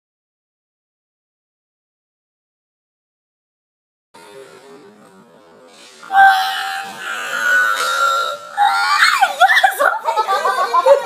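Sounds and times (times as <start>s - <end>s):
woman squealing: 6.1s - 10.1s.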